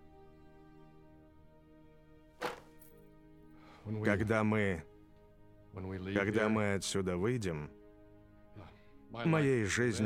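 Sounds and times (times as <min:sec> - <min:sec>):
sharp thud: 0:02.4 - 0:02.8.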